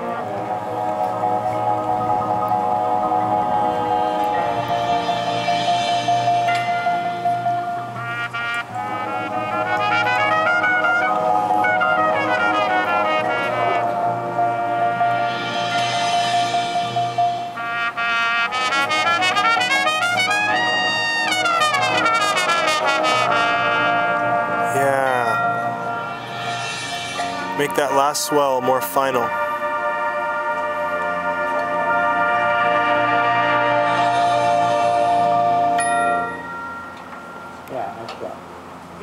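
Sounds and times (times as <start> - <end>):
marching band brass playing: 0.0 - 37.2.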